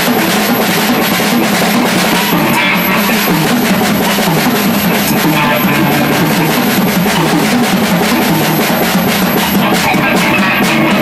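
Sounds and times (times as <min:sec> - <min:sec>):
drum kit: 0:00.0 - 0:11.0.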